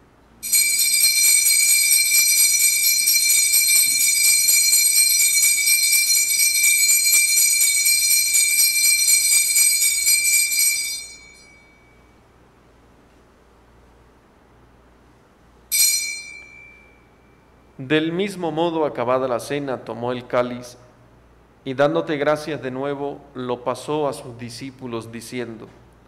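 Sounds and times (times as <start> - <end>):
altar bells ringing rapidly: 0.4 - 12.1, 15.7 - 17.4.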